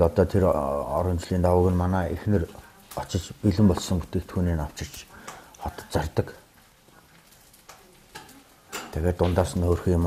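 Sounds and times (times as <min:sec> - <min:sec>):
man talking: 0:00.0 - 0:06.4, 0:08.9 - 0:10.0
faint hiss: 0:00.0 - 0:10.0.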